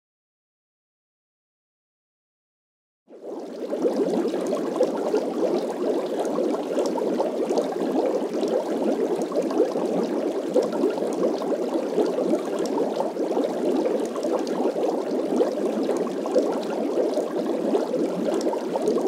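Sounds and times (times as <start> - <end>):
water bubbling: 3.1 - 19.0.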